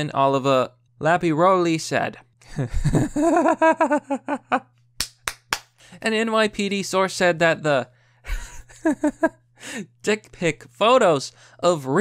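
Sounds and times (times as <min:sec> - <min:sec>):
man laughing: 0:02.4 - 0:04.7, 0:08.3 - 0:09.4.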